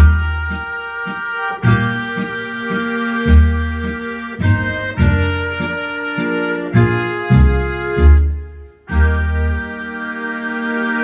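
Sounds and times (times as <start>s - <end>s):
pulsing bass notes: 0.0s - 10.2s
accordion music: 0.0s - 11.0s
trumpet-like lead melody: 0.0s - 11.0s.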